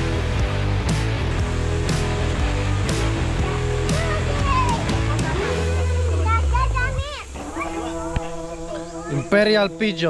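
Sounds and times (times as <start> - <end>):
insect drone: 5.7 - 10.0.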